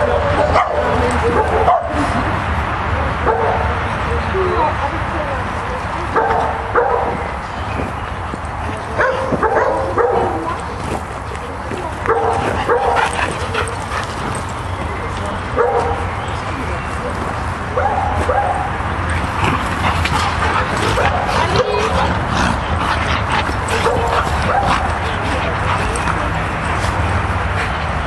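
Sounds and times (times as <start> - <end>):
dogs yipping and barking: 6.1 - 10.9, 12.0 - 14.7, 17.7 - 27.8.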